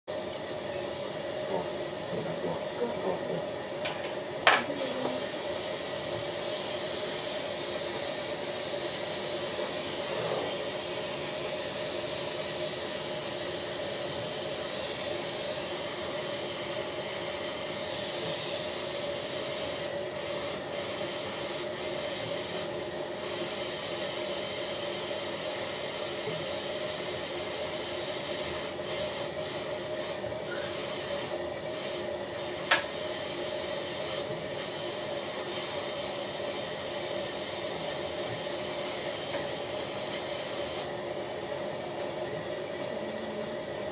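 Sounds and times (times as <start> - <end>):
dental suction hissing: 1.5 - 22.8, 27.9 - 41.1
steady hum: 38.8 - 43.9.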